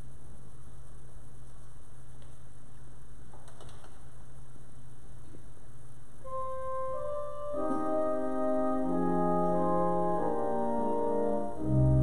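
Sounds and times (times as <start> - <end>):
steady low hum: 0.0 - 12.0
held organ note: 6.3 - 12.0.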